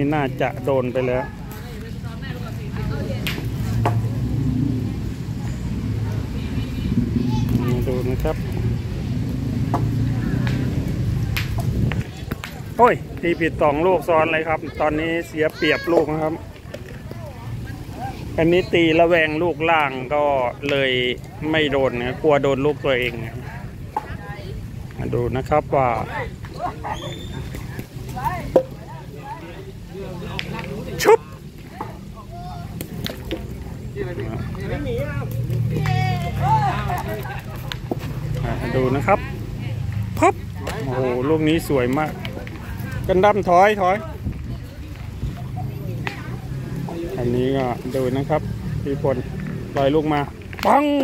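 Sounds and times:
people talking: 0.0 - 9.1, 9.7 - 51.0.

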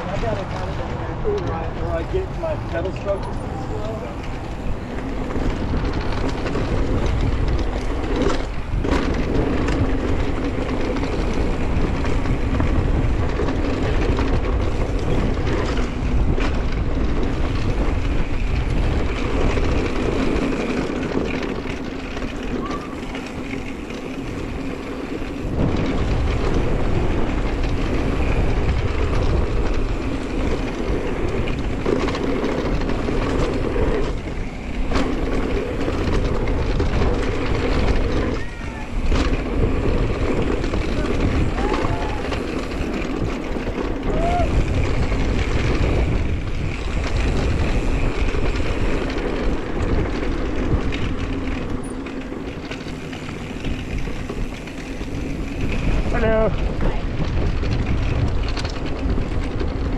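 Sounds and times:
bike tyres rolling on dirt: 0.0 - 59.9
wind rushing over microphone: 0.0 - 59.9.

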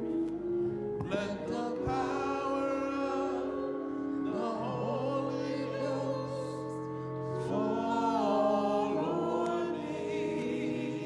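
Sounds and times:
sustained gospel chords: 0.0 - 11.0
person singing sliding notes: 1.0 - 11.0.

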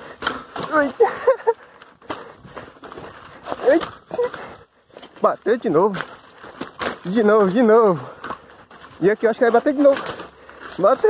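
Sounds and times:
bicycle rattling on rocky trail: 0.0 - 11.0.

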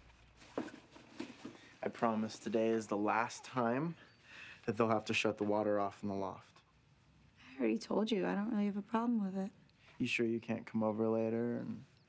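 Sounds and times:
clothing rustling: 0.0 - 3.6.

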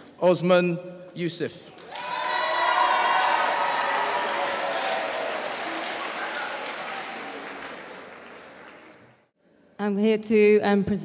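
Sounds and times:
audience applause: 1.7 - 9.3.

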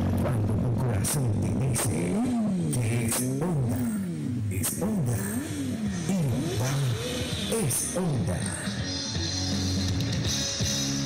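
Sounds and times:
motorcycle engine revving: 0.0 - 11.0.

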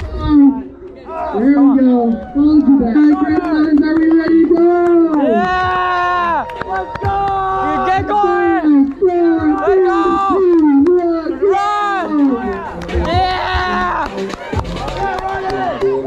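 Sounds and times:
crowd chattering: 0.0 - 16.0
person yelling: 4.7 - 6.4, 11.1 - 14.1.

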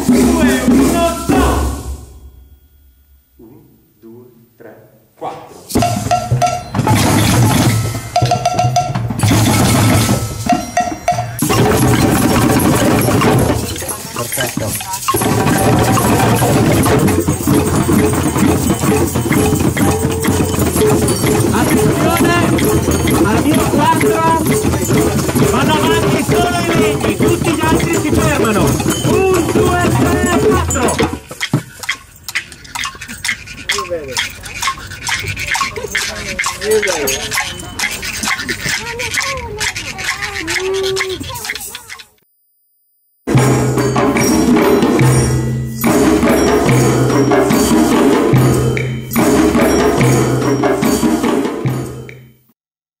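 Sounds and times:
hand drums played in a group: 0.0 - 2.2, 5.8 - 41.8, 43.3 - 52.3
voices: 11.0 - 42.2.

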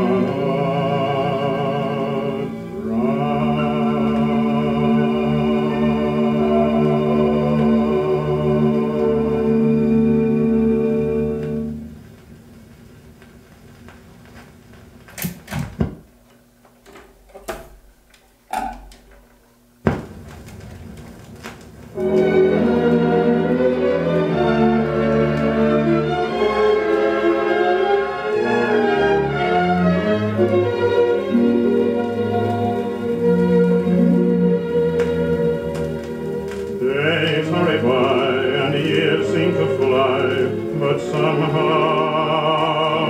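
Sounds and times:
orchestral music from a record: 0.0 - 15.0, 20.1 - 43.0
record surface noise: 10.0 - 27.1, 30.4 - 43.0.

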